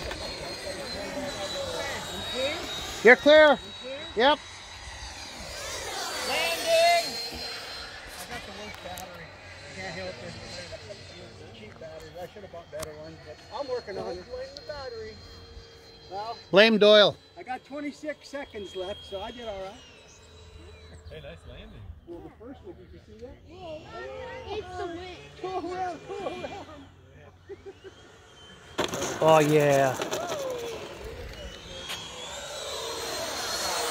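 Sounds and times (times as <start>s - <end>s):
rc jet fan whine: 0.0s - 33.9s.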